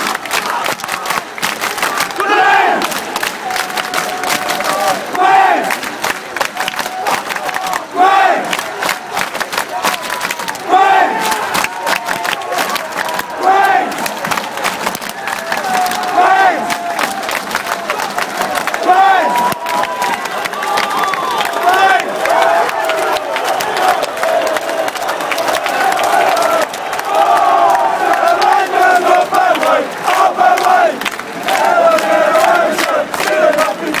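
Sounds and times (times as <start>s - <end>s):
hand clapping: 0.0s - 2.2s, 2.8s - 34.0s
supporters chanting in unison: 0.0s - 34.0s.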